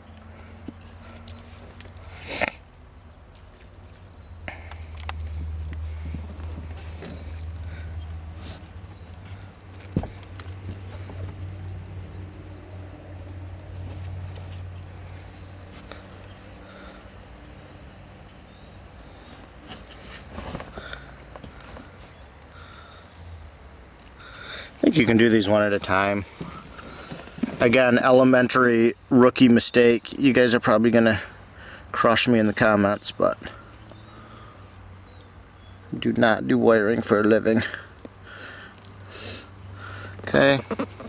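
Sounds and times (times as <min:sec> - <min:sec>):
hands fumbling with wire: 0:00.6 - 0:11.5, 0:19.2 - 0:22.6.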